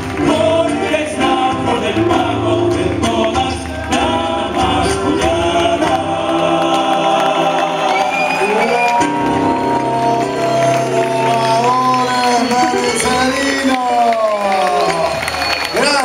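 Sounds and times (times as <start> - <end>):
male voices singing in harmony: 0.0 - 13.6
acoustic guitars: 0.0 - 13.9.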